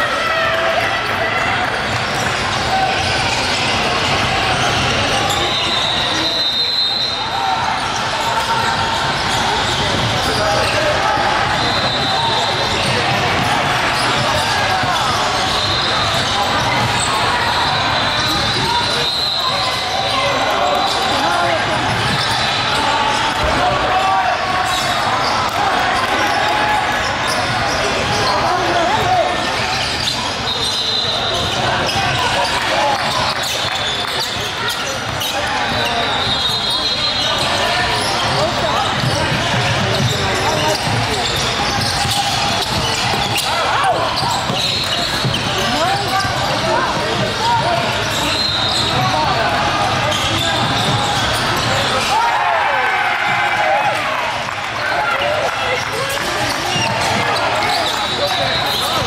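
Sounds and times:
shoe squeaks: 2.2 - 52.2, 55.8 - 59.0.

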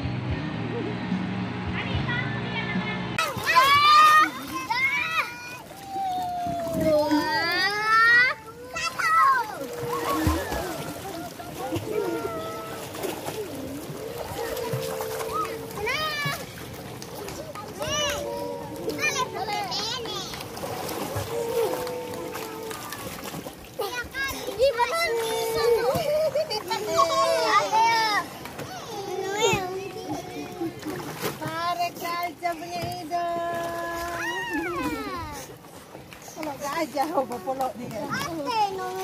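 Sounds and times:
children shrieking and chattering: 3.2 - 31.2, 34.0 - 35.6
light water splashing: 3.2 - 39.0.

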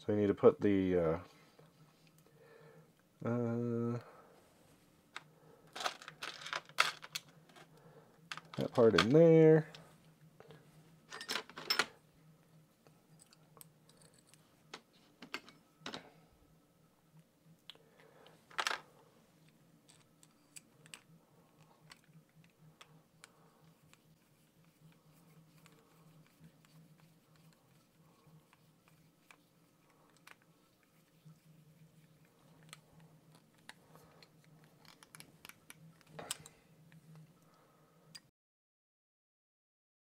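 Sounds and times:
small parts clicking and tapping: 5.1 - 9.2, 17.6 - 24.1, 32.5 - 37.3.

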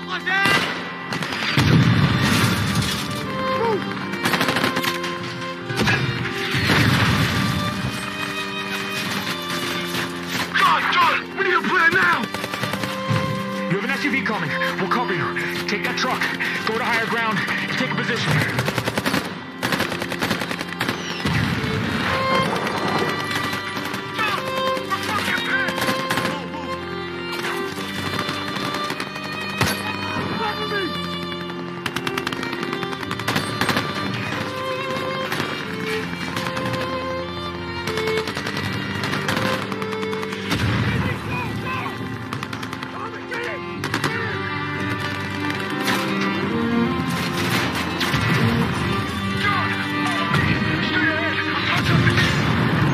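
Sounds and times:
tense film score: 0.0 - 52.9
automatic gunfire: 4.2 - 5.1, 11.9 - 13.4, 18.3 - 26.5, 27.7 - 29.9, 31.2 - 37.0, 37.9 - 41.2, 42.2 - 43.1, 43.8 - 44.2.

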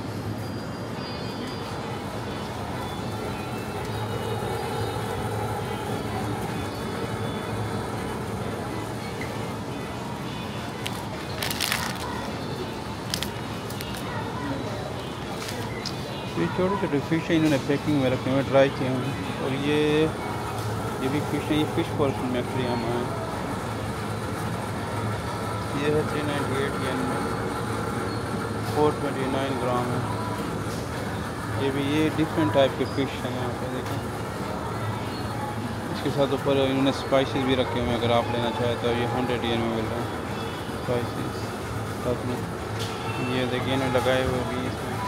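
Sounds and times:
refrigerated cases humming: 1.8 - 45.0.

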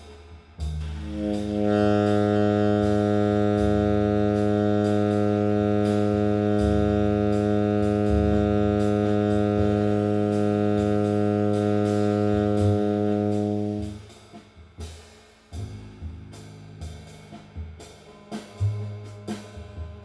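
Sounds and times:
light cymbal strokes: 0.0 - 20.0
walking bass: 0.6 - 14.2, 15.6 - 19.4
saxophone holding low tone: 0.7 - 14.1.

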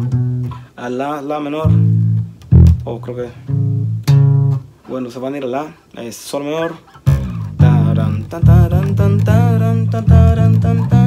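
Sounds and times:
electric bass plucked notes: 0.0 - 0.7, 1.6 - 4.8, 7.0 - 11.0.

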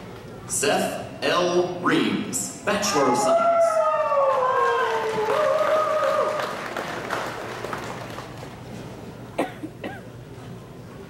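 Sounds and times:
audience applause: 4.1 - 8.8
coughing: 9.3 - 10.2.

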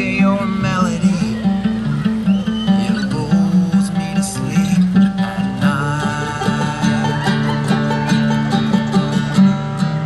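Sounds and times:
acoustic guitar picking: 0.0 - 10.0
upright bass walking: 3.4 - 10.0
mandolin picking: 3.6 - 10.0
banjo picking: 4.4 - 10.0.

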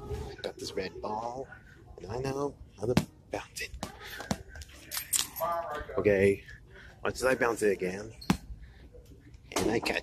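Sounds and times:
man speaking: 0.3 - 4.1, 5.3 - 8.2.

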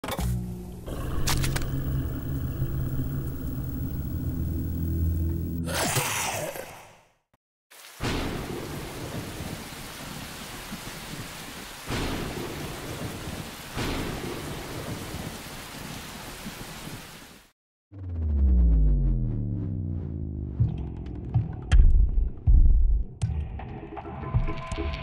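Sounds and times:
deep droning synth tone: 0.5 - 5.7
steady rainfall: 7.7 - 17.5.

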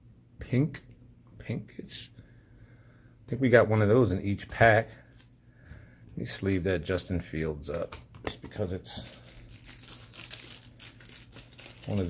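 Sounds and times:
plastic sleeve crinkling: 8.6 - 12.0.

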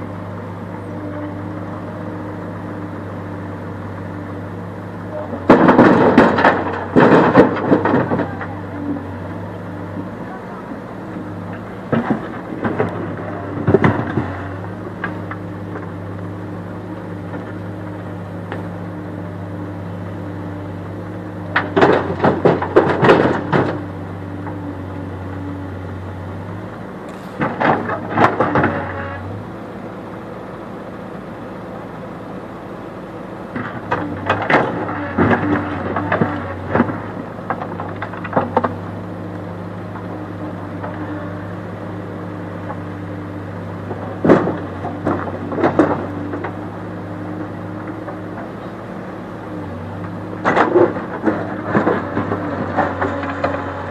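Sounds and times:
diesel engine running: 0.0 - 53.9.

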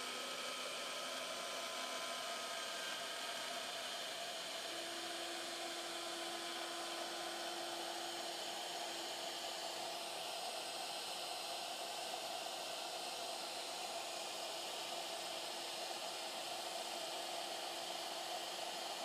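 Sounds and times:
router spindle cutting wood: 0.8 - 10.2.

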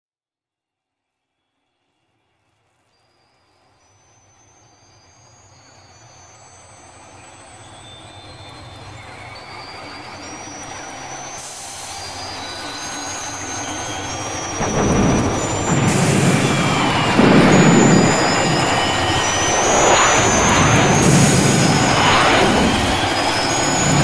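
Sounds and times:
high sustained tones: 8.1 - 24.0
high hiss: 9.5 - 24.0
dense wash of noise: 11.6 - 24.0.

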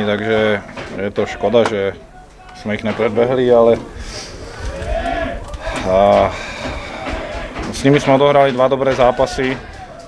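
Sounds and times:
man speaking: 0.0 - 4.0.

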